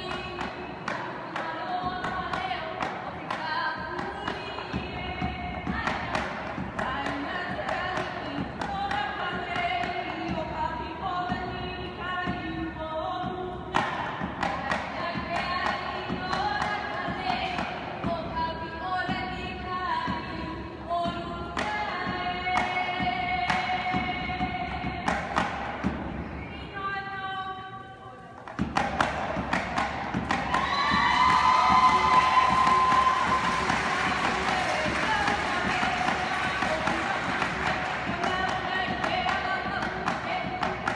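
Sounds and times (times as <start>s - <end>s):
gourd drum thumps: 0.0s - 26.3s, 28.4s - 40.9s.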